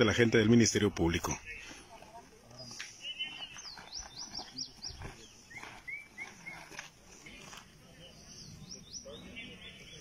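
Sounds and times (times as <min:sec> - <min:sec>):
shorter lower bird chirps: 0:02.9 - 0:06.8, 0:07.9 - 0:10.0
high rising bird chirps: 0:03.0 - 0:06.8.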